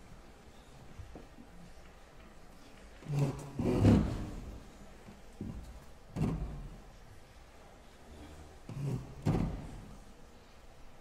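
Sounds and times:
piano bench thuds and creaks: 8.7s - 9.9s.

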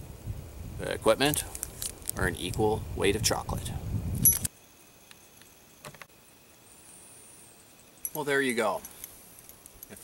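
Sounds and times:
metallic ring clink: 4.2s - 5.4s, 6.9s - 10.0s.

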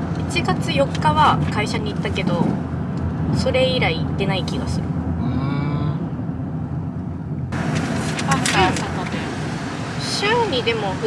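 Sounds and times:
road and engine rumble in car: 0.0s - 11.0s
faint hummed voice: 5.2s - 6.1s.

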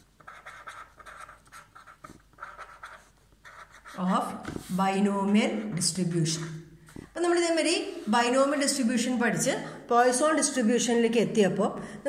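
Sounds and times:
pen scratching on paper: 0.0s - 6.5s.

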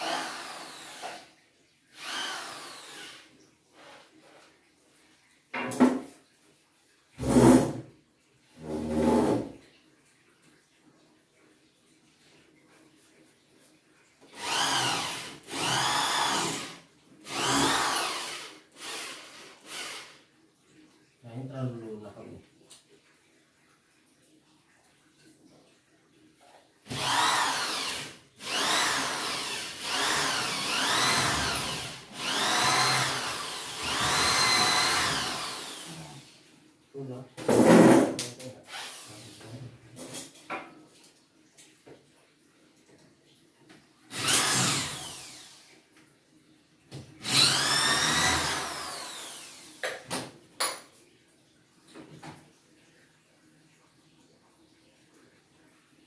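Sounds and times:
cordless drill bursts: 0.0s - 1.3s, 2.0s - 3.3s, 14.4s - 20.2s, 26.9s - 36.2s, 38.7s - 39.3s, 44.1s - 45.7s, 47.2s - 49.8s.

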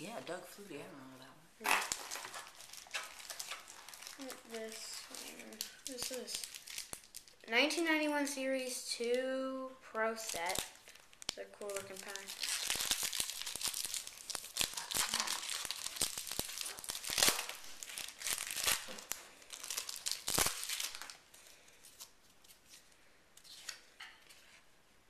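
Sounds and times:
wrapper tearing and crinkling: 1.6s - 7.5s, 10.0s - 24.4s.

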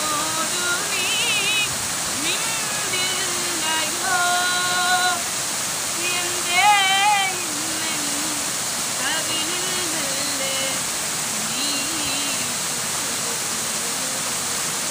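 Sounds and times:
woman singing solo: 0.0s - 13.0s
waterfall rushing: 0.0s - 14.9s.

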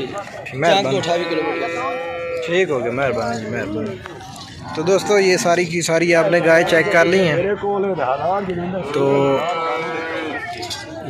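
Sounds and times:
cow mooing: 0.8s - 2.7s, 8.8s - 10.4s.

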